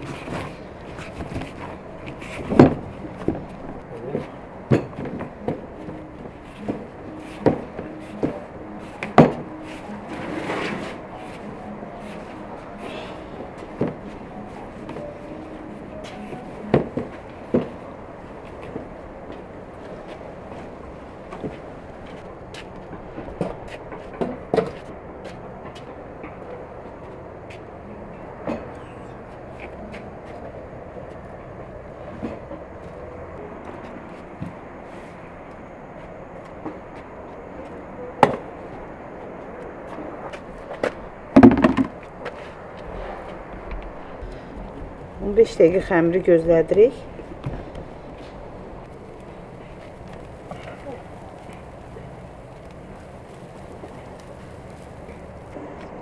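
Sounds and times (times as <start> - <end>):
outdoor background noise: 0.0 - 56.0
sharp knocks and clatters: 41.4 - 42.0.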